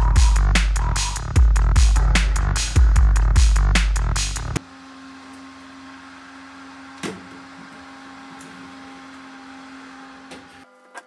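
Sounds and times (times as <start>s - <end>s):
electric oven humming: 4.6s - 11.0s.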